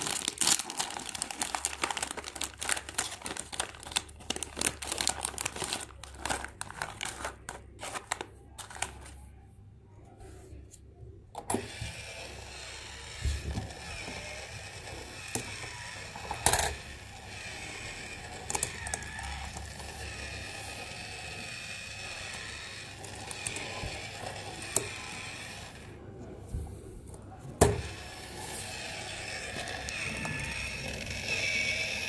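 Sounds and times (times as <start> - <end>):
toy motor and gears whining: 11.4 - 25.9, 27.7 - 32.0.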